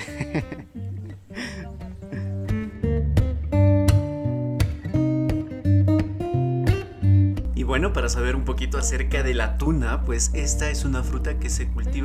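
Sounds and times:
acoustic guitar plucking and strumming: 0.0s - 12.0s.

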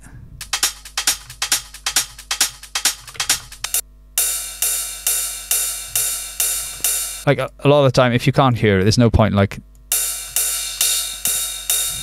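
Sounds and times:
techno percussion loop: 0.4s - 7.2s, 9.9s - 12.0s
open hi-hat hits: 0.4s - 7.3s, 9.8s - 12.0s.

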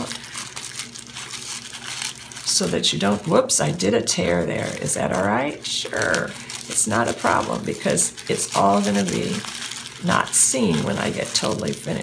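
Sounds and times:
tissue paper rustling: 0.0s - 12.0s.

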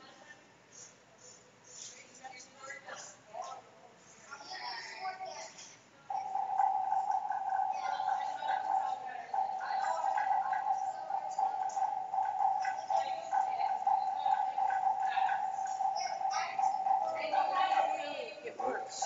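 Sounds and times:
voices chattering: 0.0s - 19.0s.

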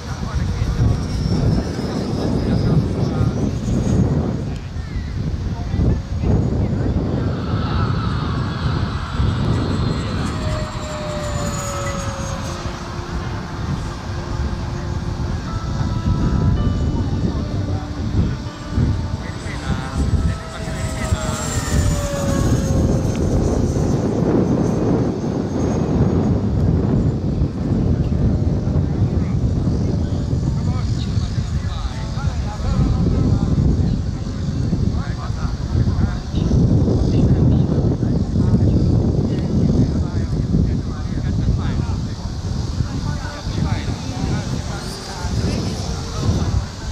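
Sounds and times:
loud low rumble: 0.0s - 46.9s
model jet whine: 0.0s - 46.9s.

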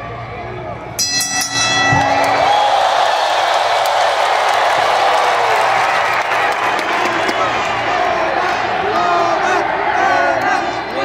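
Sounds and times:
arena crowd cheering: 0.0s - 11.0s
chord of ringing tones: 1.0s - 3.0s.

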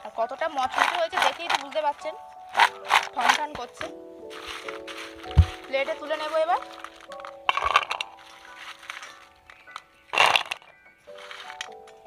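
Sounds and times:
background music with held notes: 0.0s - 12.0s
snack sticks clattering onto plate: 0.6s - 1.8s, 2.6s - 3.5s, 6.6s - 12.0s.

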